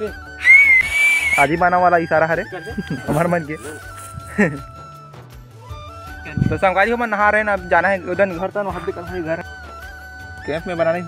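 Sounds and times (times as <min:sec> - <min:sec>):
background music: 0:00.0 - 0:11.0
high whistle: 0:00.3 - 0:01.6.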